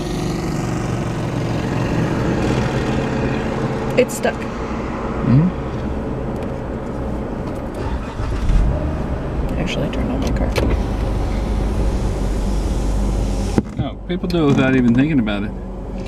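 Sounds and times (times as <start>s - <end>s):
car engine rumble inside cabin: 0.0s - 16.0s
voice humming: 5.2s - 5.6s.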